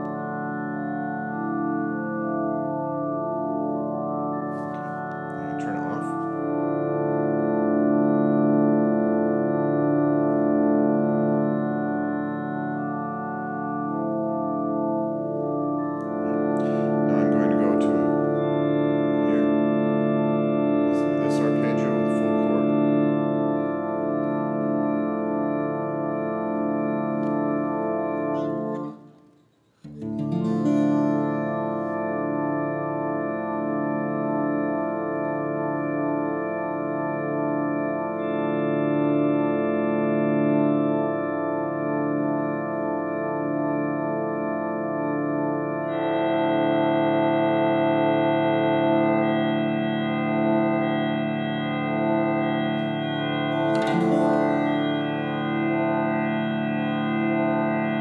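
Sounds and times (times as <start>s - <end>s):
synthesized guitar organ-like chord: 0.0s - 58.0s
pulsing arpeggio: 45.9s - 58.0s.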